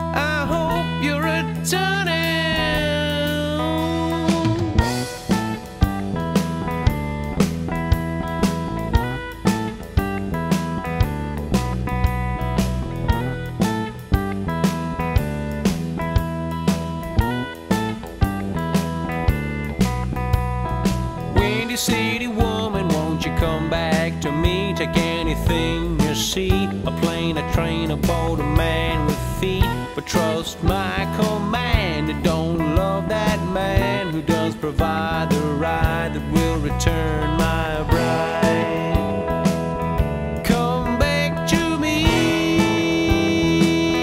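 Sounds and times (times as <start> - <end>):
person singing: 0.0 - 5.8, 21.2 - 44.0
rock band playing: 0.0 - 44.0
drums beating: 2.8 - 44.0.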